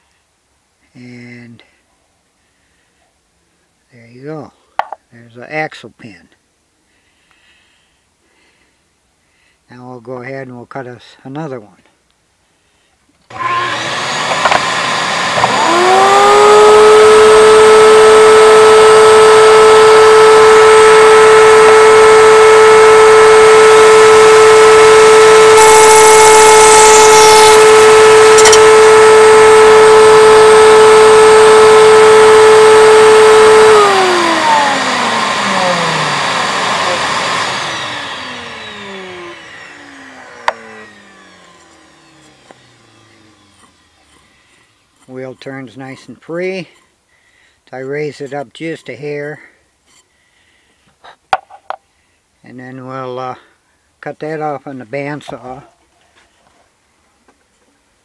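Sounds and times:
router bit rasping on wood: 13.3s - 47.0s, 47.8s - 49.0s
wood router whining: 13.3s - 47.0s
click: 28.4s - 28.6s.

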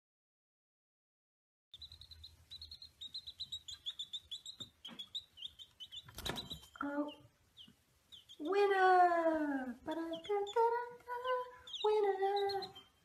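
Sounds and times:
baby chicks peeping: 1.8s - 13.0s.

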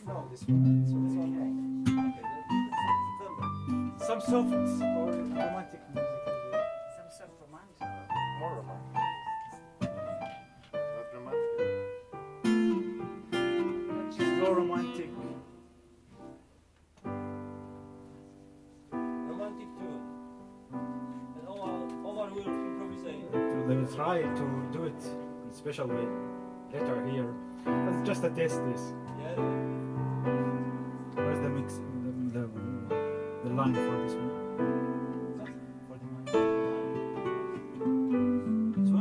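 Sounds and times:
acoustic guitar playing: 0.0s - 39.0s
digital piano notes and chords: 0.0s - 39.0s.

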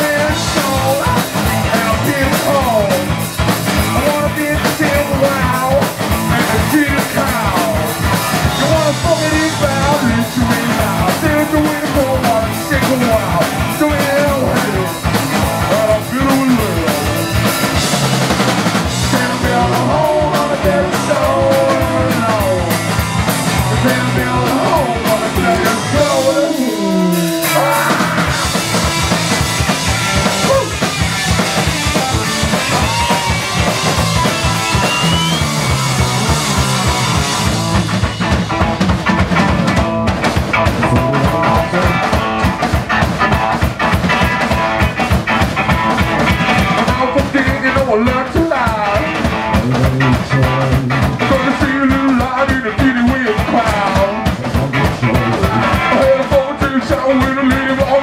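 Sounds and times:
punk band playing: 0.0s - 58.0s.

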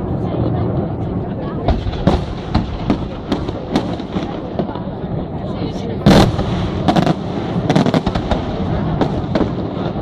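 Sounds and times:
fireworks bangs: 1.6s - 5.2s, 6.0s - 10.0s.

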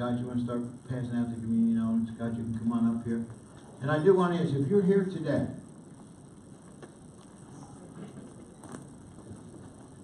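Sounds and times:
people moving about in a hall: 0.0s - 10.0s.

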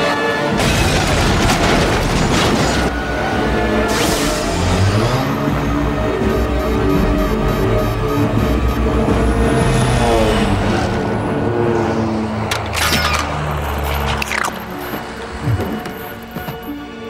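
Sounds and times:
dramatic orchestral music: 0.0s - 17.0s.

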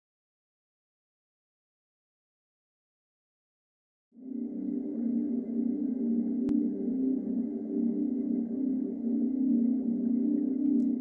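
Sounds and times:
low synthesizer drone: 4.2s - 11.0s.

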